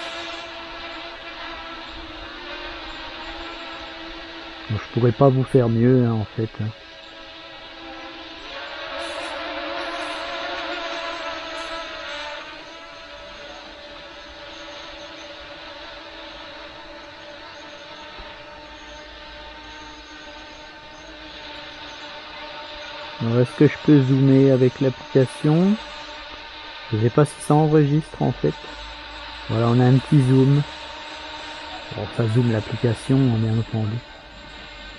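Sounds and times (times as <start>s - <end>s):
drone propellers whining: 0.0s - 34.9s.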